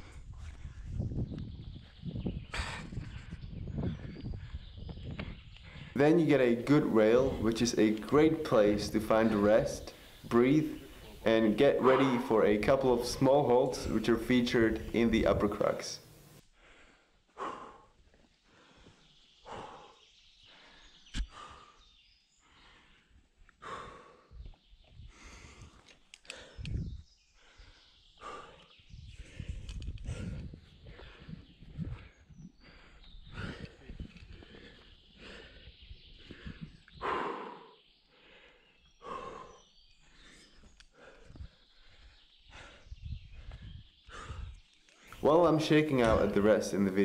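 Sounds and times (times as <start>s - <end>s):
climber breathing hard: 0.0s - 7.6s, 8.6s - 13.1s, 16.4s - 45.2s.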